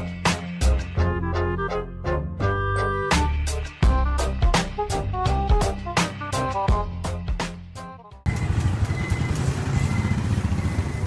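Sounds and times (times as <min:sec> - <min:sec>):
background music: 0:00.0 - 0:08.3
motorcycle engine running: 0:08.3 - 0:11.0
traffic noise: 0:08.3 - 0:11.0.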